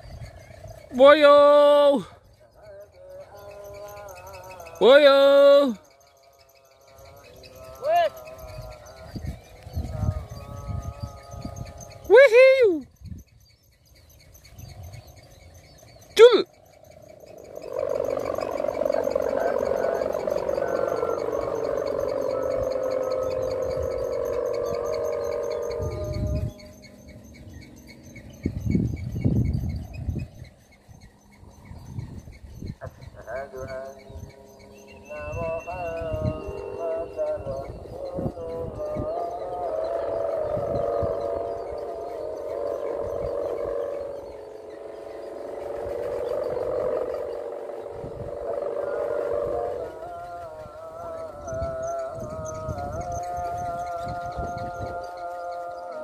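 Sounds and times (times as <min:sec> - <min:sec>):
kite hummer buzzing: 0:00.0 - 0:56.0.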